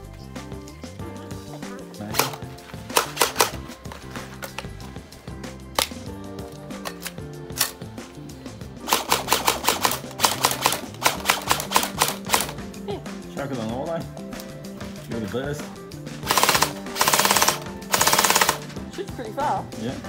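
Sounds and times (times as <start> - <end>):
background music: 0.0 - 20.0
sharp clicks: 2.1 - 3.6, 8.8 - 12.6, 16.3 - 18.7
gel blaster firing full auto: 8.9 - 12.5, 16.3 - 18.6.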